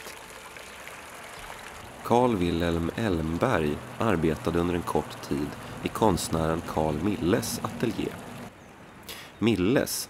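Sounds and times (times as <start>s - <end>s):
fountain water splashing: 0.0s - 8.5s.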